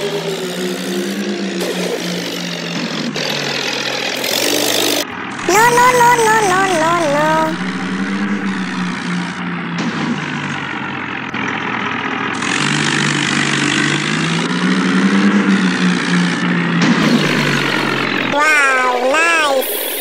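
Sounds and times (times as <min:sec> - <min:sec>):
tractor engine revving: 0:00.0 - 0:20.0.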